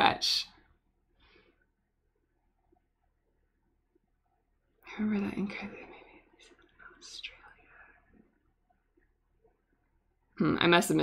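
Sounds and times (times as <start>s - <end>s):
woman whispering: 4.8s - 8.2s.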